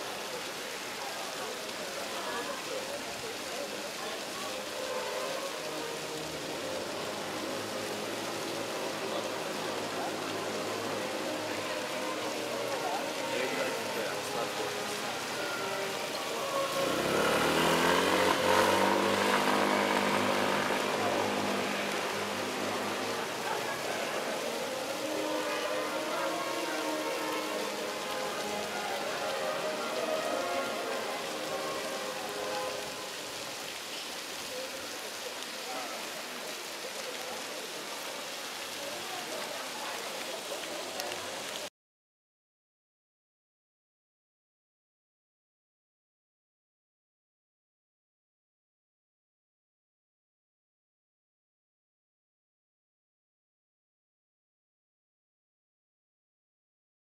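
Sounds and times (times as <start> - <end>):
fountain splashing: 0.0 - 41.7
people talking: 0.0 - 41.7
vehicle passing: 4.5 - 33.8.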